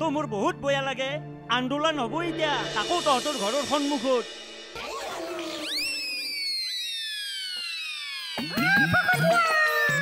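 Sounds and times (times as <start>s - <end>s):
descending whistle: 5.3s - 9.0s.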